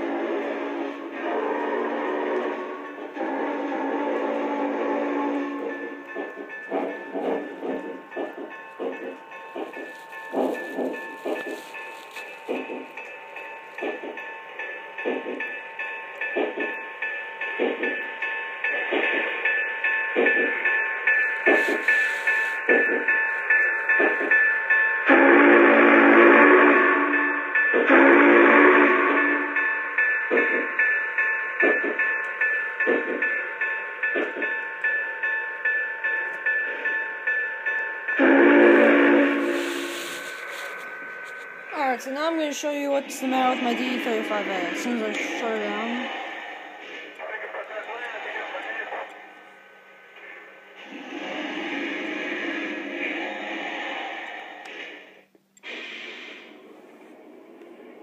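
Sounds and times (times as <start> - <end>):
train whistle blasts: 0.0 - 6.0, 25.1 - 29.6, 38.2 - 40.8
model steam train chuffing: 0.0 - 11.8, 25.0 - 29.6, 38.1 - 49.5, 50.1 - 58.0.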